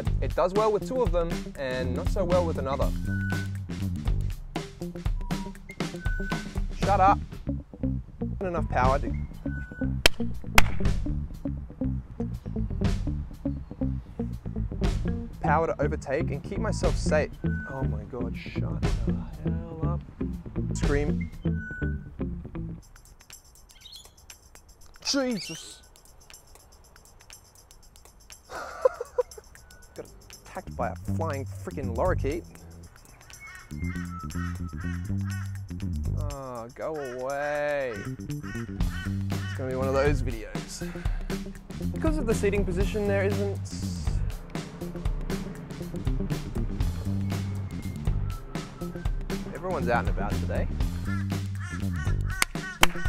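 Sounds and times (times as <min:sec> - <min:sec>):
background music with steady beat: 0:00.0 - 0:53.0
sharp clicks: 0:10.1 - 0:11.0, 0:52.2 - 0:53.0
parrot chirping: 0:23.0 - 0:28.4, 0:32.5 - 0:35.8.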